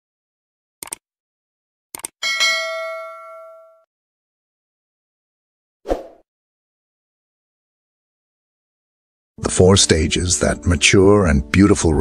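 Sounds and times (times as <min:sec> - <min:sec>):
bell ding: 0:02.2 - 0:03.9.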